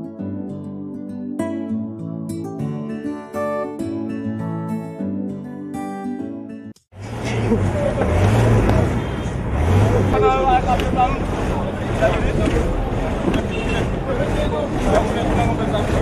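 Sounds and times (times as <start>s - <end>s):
crowd chatter: 7.0s - 16.0s
low rumble of vehicles: 7.0s - 16.0s.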